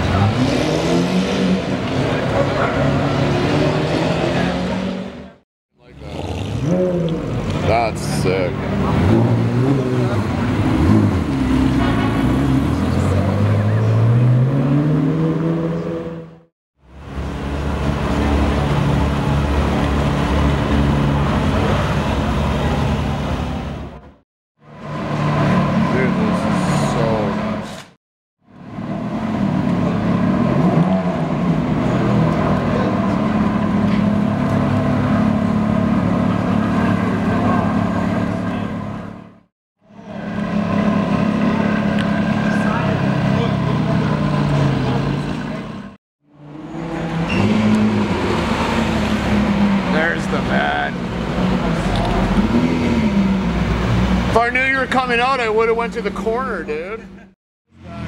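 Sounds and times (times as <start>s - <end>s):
car engine revving: 0.0s - 16.5s, 28.6s - 56.2s.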